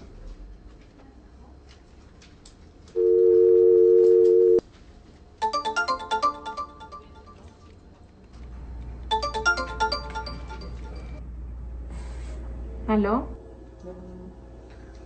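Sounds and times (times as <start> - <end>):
two-tone telephone dial tone: 3.0 - 4.6
phone ringtone melody: 5.4 - 7.7, 9.1 - 11.2.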